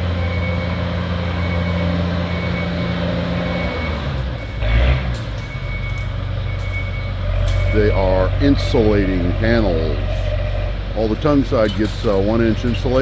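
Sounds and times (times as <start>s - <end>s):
heavy machine engine humming: 0.0s - 13.0s.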